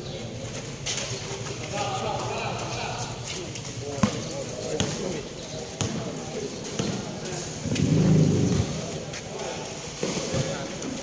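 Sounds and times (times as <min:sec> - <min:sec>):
voices of people: 0:00.0 - 0:11.0
basketball bouncing on concrete: 0:04.0 - 0:05.1, 0:05.8 - 0:07.2.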